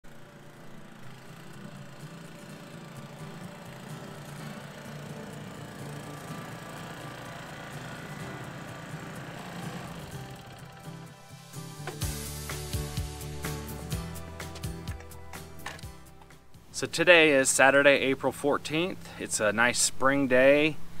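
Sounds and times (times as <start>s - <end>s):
small mower engine running: 0.0s - 19.2s.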